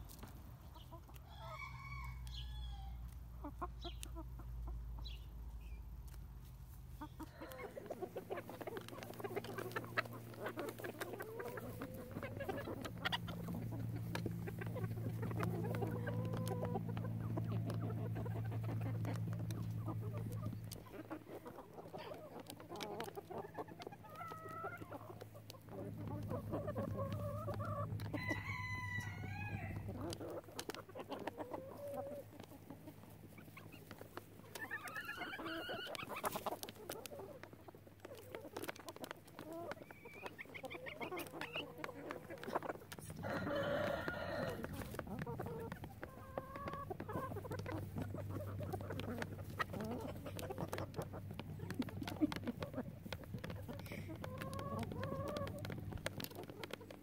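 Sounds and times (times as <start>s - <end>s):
chickens clucking: 0.0s - 57.0s
beaks pecking: 3.1s - 57.0s.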